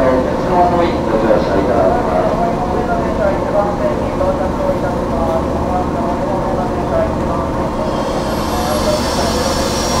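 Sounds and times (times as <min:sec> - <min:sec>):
onlookers chattering: 0:00.0 - 0:10.0
train equipment humming and hissing: 0:00.0 - 0:10.0
faint high whine: 0:07.3 - 0:10.0.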